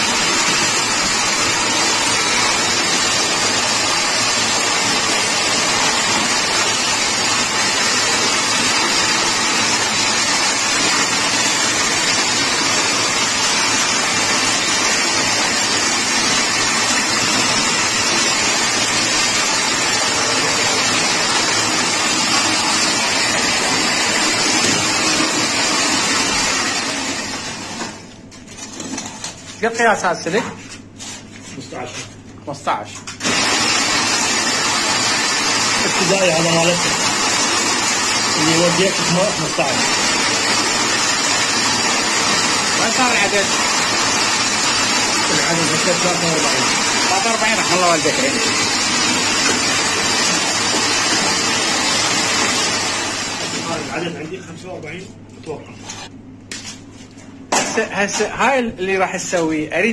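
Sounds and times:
coil winding machine whirring: 0.0s - 29.4s, 33.1s - 54.4s.

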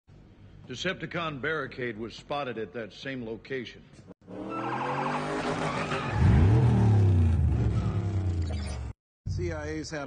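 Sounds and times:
engine revving: 4.2s - 9.0s
tyres skidding: 4.3s - 8.9s.

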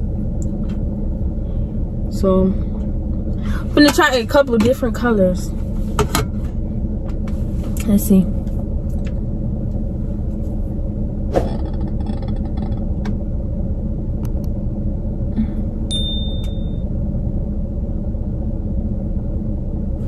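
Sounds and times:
car engine idling: 0.0s - 20.0s
electronic tone with chime: 15.9s - 16.9s.

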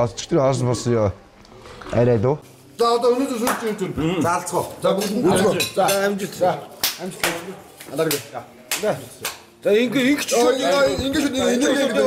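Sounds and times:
men talking and exclaiming: 2.8s - 12.0s.

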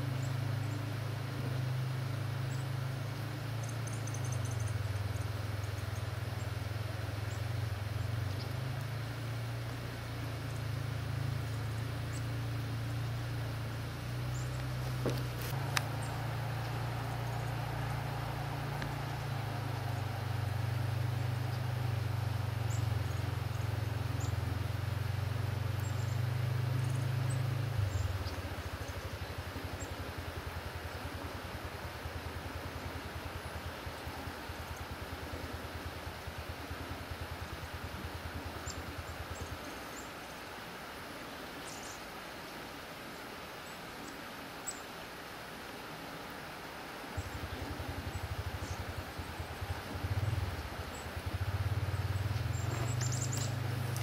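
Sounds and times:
low mechanical hum: 0.0s - 54.0s
rapid flutter: 14.5s - 23.9s, 47.3s - 54.0s.

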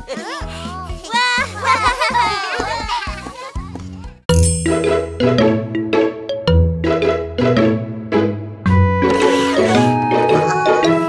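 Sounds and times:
high cartoon voices: 0.0s - 3.7s
children's background music: 0.0s - 11.0s
bright intro tune with plinking notes: 4.3s - 8.0s.

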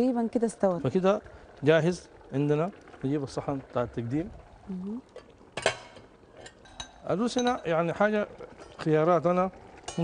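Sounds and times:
utensils ticking and clinking: 5.2s - 8.2s
crockery clinking: 5.6s - 7.8s.

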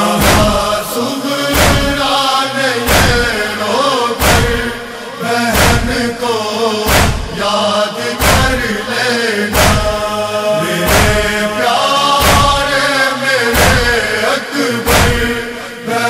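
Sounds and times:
heavy rhythmic thump: 0.0s - 15.9s
person singing a lament: 0.0s - 16.0s.

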